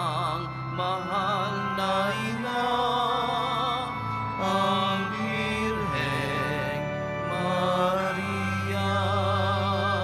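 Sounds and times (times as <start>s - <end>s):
person singing a hymn: 0.0s - 10.0s
sustained organ chords: 0.0s - 10.0s.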